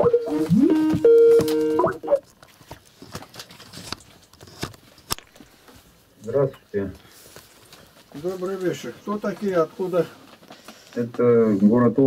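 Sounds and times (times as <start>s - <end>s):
electronic call tone: 0.0s - 2.2s.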